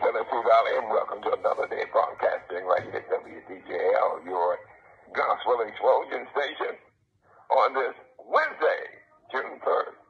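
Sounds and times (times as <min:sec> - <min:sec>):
man talking: 0:00.0 - 0:06.9, 0:07.5 - 0:10.0.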